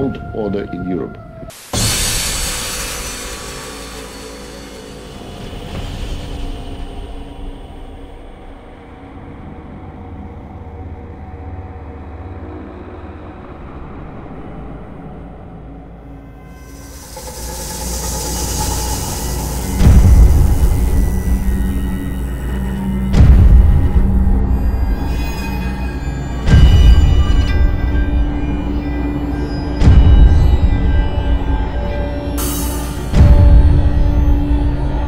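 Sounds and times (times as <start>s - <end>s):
ominous music: 0.0s - 35.0s
rumbling noise: 12.8s - 29.1s.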